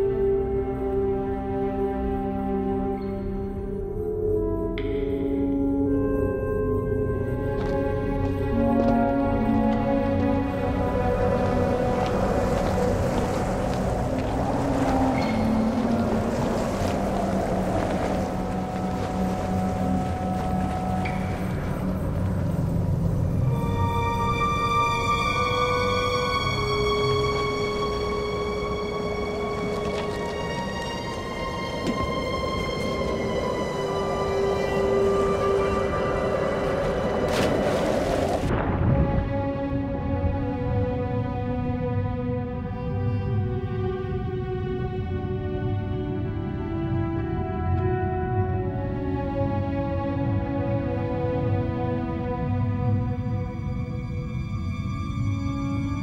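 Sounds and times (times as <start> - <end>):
eerie film score: 0.0 - 56.0
wash of noise: 10.0 - 42.0
splash into water: 37.2 - 38.8.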